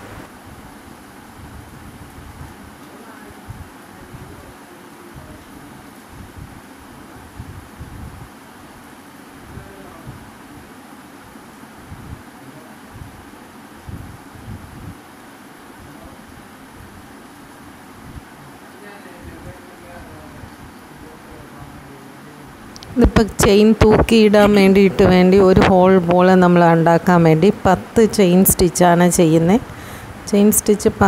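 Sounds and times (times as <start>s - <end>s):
steady background hiss: 0.0s - 31.0s.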